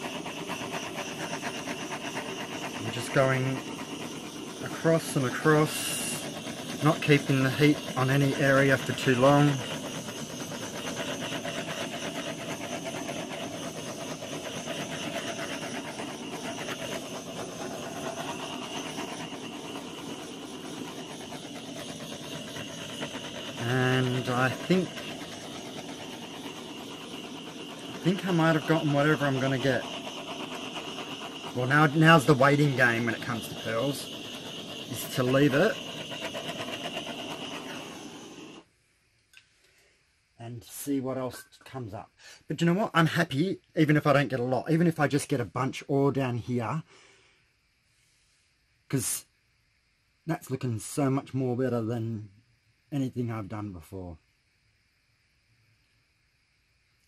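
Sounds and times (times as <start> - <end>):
gas torch flame hissing: 0.0 - 38.7.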